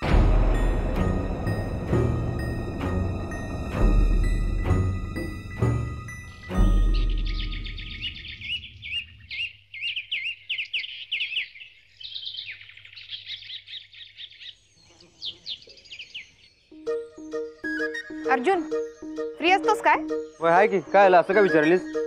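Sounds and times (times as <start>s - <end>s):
light music with pulsing notes: 0.0s - 8.3s, 16.7s - 22.0s
songbirds chirping: 0.0s - 22.0s.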